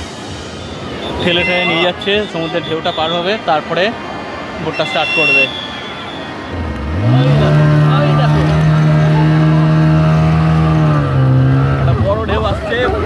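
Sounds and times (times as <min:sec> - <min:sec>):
voices: 0:00.0 - 0:13.0
outboard motor revving: 0:06.5 - 0:13.0.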